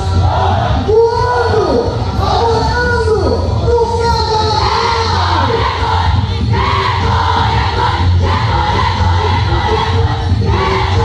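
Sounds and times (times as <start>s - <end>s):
crowd noise: 0.0s - 11.0s
loud folk dance music: 0.0s - 11.0s
many voices singing together: 4.6s - 11.0s.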